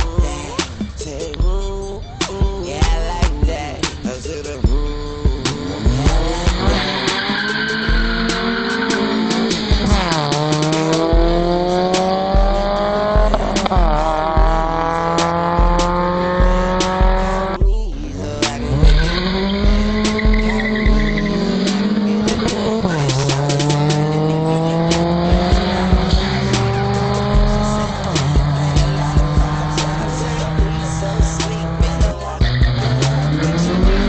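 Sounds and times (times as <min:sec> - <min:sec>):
background music with beat: 0:00.0 - 0:34.0
car engines accelerating: 0:00.0 - 0:34.0.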